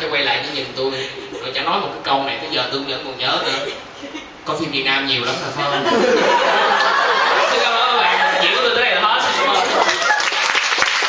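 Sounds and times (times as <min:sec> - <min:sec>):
audience clapping: 0:09.6 - 0:11.0.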